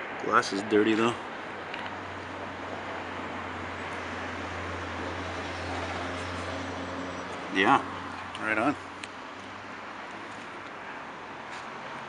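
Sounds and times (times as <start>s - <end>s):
traffic rumble: 0.0s - 12.0s.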